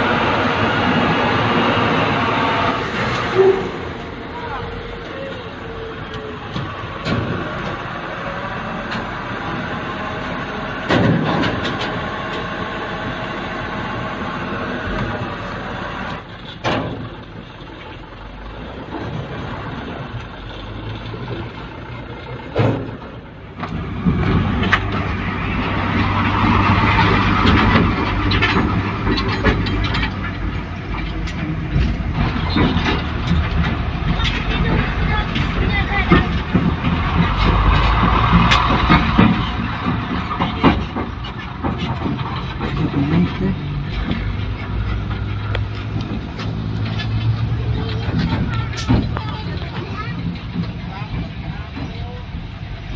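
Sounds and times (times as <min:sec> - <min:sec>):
garbage truck engine running: 0:00.0 - 0:52.9
people talking: 0:03.6 - 0:06.7, 0:34.0 - 0:36.6, 0:47.6 - 0:52.6.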